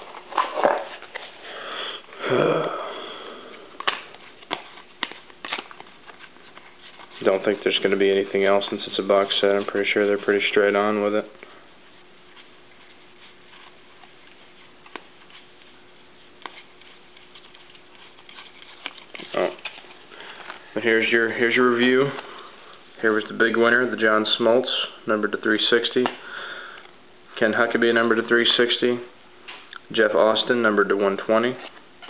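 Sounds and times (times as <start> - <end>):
cards sliding: 0.0 - 1.4, 3.8 - 7.5, 12.3 - 20.6
breathy sigh: 1.4 - 3.8
card snaps: 3.8 - 5.8.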